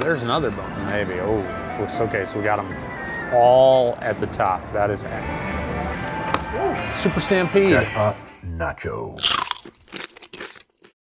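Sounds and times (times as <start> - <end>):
tortilla chip crunching: 9.2 - 11.0.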